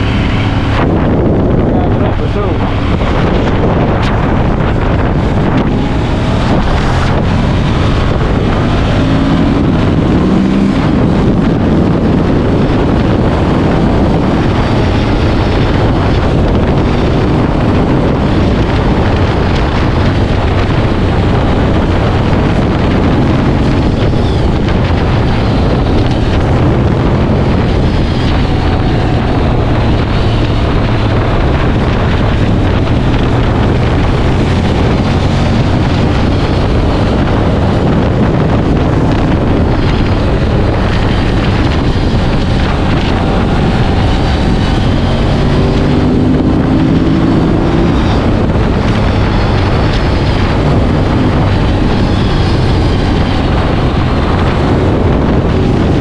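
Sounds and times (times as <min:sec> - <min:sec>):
wind rush on microphone: 0:00.0 - 0:56.0.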